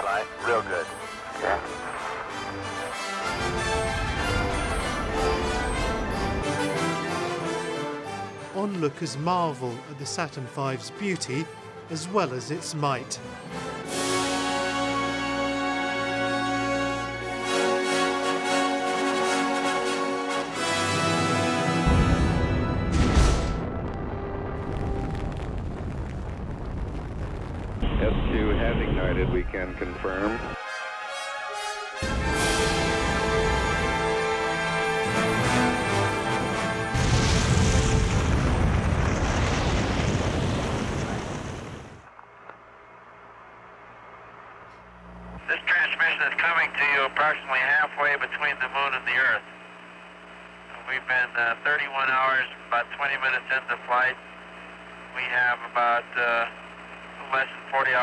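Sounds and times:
radio voice chatter: 0.0s - 2.0s, 45.4s - 49.5s, 50.7s - 54.3s, 55.1s - 56.6s, 57.2s - 58.0s
rocket engine roar: 0.0s - 7.6s, 21.8s - 30.6s, 32.0s - 42.1s
deep boom with rushing noise: 22.9s - 29.6s, 37.0s - 42.0s.

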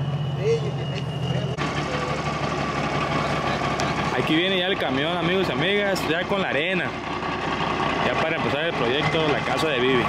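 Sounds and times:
dump truck engine running: 0.0s - 10.0s.

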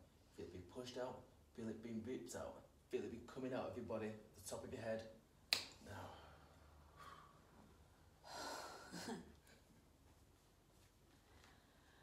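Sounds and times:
finger snap: 5.5s - 5.8s
breathy exhale: 6.1s - 7.5s.

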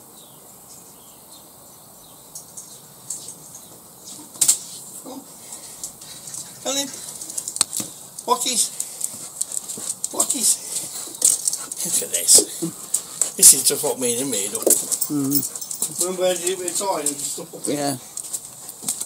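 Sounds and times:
short voice sounds: 15.1s - 15.4s.

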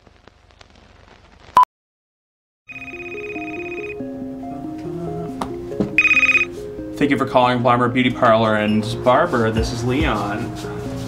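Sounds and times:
telephone ringing: 2.7s - 4.0s, 6.0s - 6.5s
soft background music: 2.7s - 11.0s.

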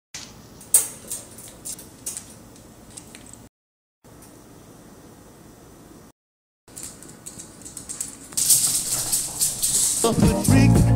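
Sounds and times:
dry rattling shaker percussion: 6.7s - 10.9s.

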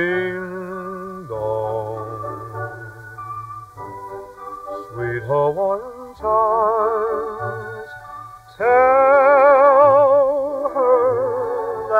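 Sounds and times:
dance orchestra sustained chords: 0.0s - 11.9s.

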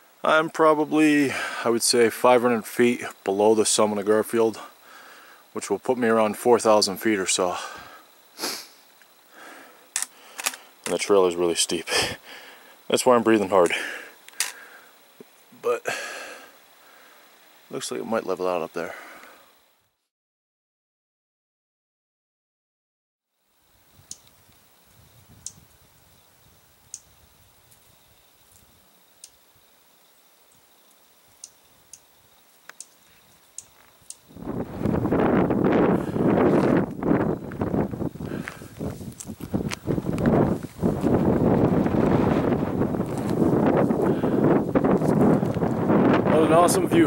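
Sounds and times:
songbird chirping: 24.0s - 35.9s
wind buffeting microphone: 24.9s - 26.2s, 34.3s - 47.0s.

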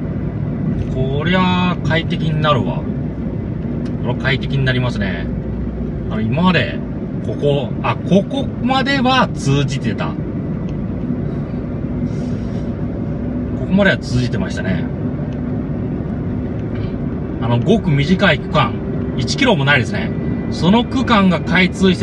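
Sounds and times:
car engine and tyre noise: 0.0s - 22.0s
people speaking: 4.0s - 5.3s, 6.1s - 10.2s, 13.6s - 14.9s, 17.4s - 22.0s.

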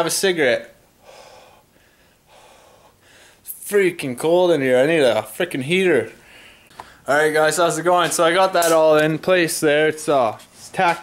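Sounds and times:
man blowing out breaths: 1.0s - 3.5s, 6.2s - 7.1s.

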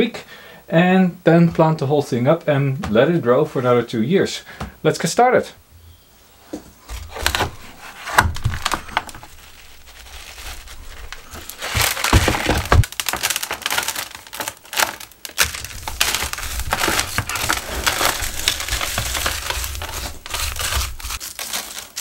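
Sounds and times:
hands digging through gritty soil: 7.0s - 14.7s, 15.3s - 22.0s.

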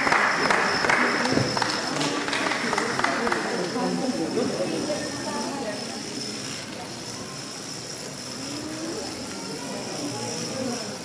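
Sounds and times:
murmuring voices: 0.0s - 11.0s.

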